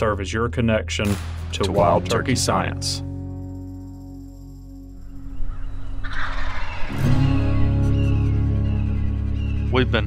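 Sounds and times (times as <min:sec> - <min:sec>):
turkey gobbling: 0:05.5 - 0:08.1.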